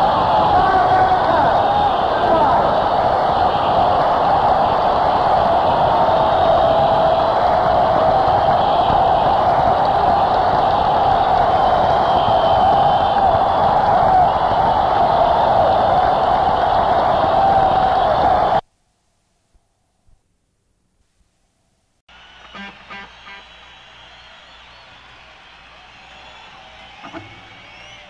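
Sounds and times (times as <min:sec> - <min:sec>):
crowd cheering and applauding: 0:00.0 - 0:18.6, 0:22.1 - 0:28.0.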